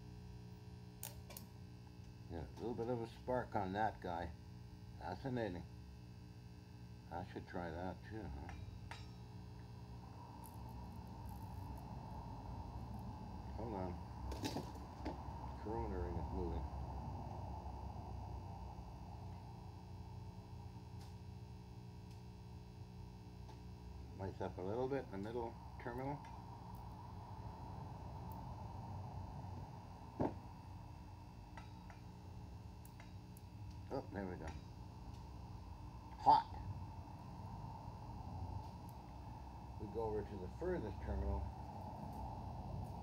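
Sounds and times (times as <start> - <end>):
low electrical hum: 0.0 - 43.0.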